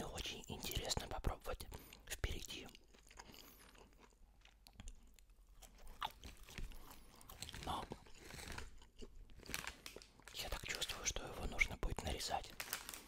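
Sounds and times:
chewing dry sausage: 0.0 - 11.2.

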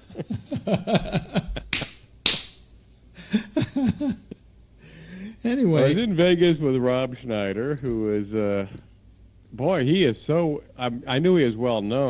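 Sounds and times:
men laughing: 0.0 - 1.9, 3.2 - 6.0
sharp smacks: 1.7 - 2.6.

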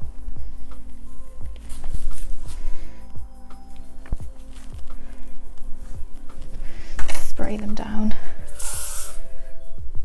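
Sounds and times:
aerosol spray can hiss: 8.4 - 9.3.

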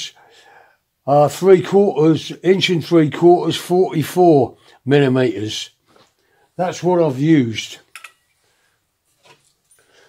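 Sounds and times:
handling noise of tools and wood: 7.8 - 10.0.

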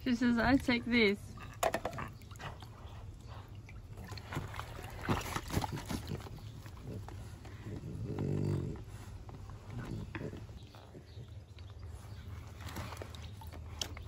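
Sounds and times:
water splashing and sloshing: 0.0 - 7.6, 9.1 - 14.0
dog low vocal sound: 5.6 - 11.6.

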